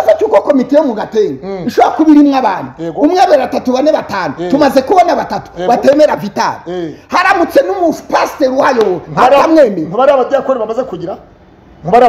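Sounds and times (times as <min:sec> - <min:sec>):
man talking animatedly: 0:00.0 - 0:12.0.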